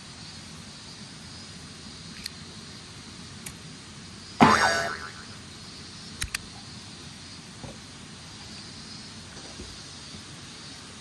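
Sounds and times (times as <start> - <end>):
ringing sound bending downward: 4.4 - 5.4
faint click: 6.2 - 6.4.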